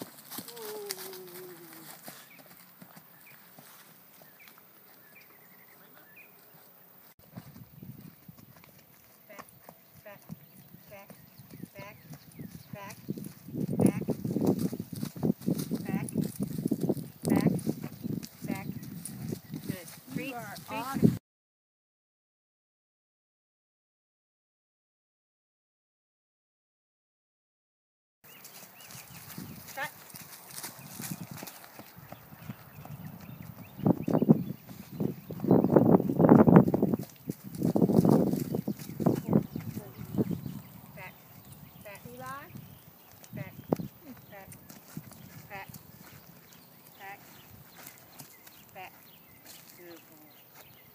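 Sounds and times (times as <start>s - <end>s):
horse hooves on dirt: 0.0s - 21.2s, 28.3s - 50.9s.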